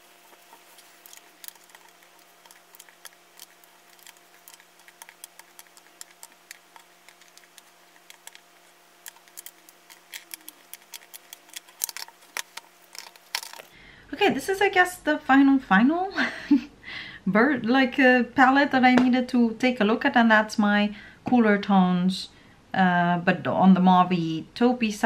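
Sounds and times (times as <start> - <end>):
small metal pans clicking: 0.0 - 13.8.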